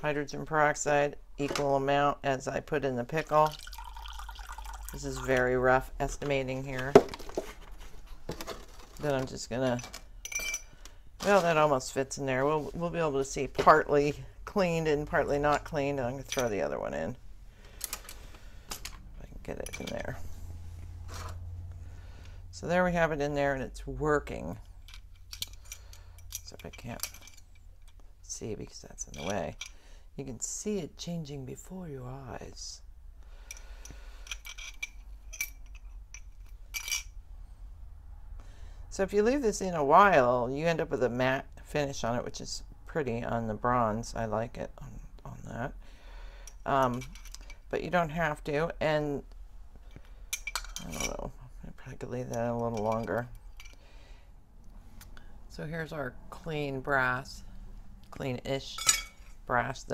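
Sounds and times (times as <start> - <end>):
metal tongs clinking scrape: 58.8 - 59.4.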